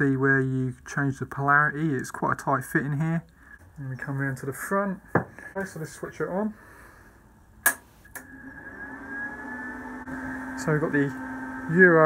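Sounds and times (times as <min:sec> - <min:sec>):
welder power click: 0:07.6 - 0:08.4.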